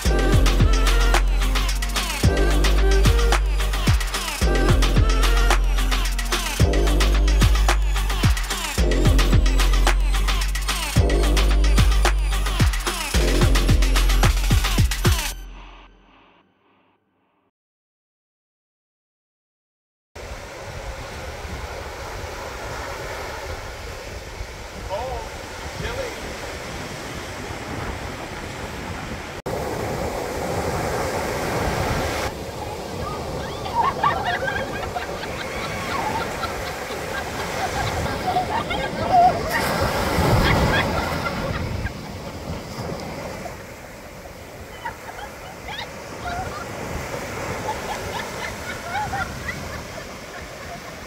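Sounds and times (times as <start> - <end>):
ocean waves washing onto beach: 0.0 - 6.9, 20.2 - 51.0.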